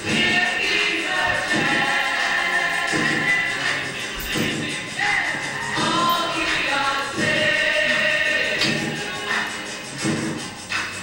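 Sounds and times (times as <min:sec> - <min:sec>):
choir singing long notes: 0:00.0 - 0:10.1.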